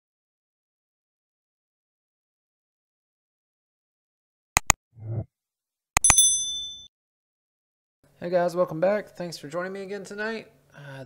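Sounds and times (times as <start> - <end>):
bell-like ding: 6.0 - 6.9.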